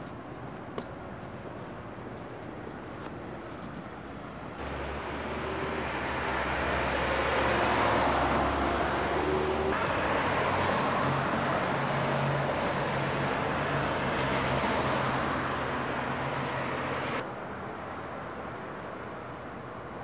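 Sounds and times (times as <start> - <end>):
passing cars: 4.6 - 17.2.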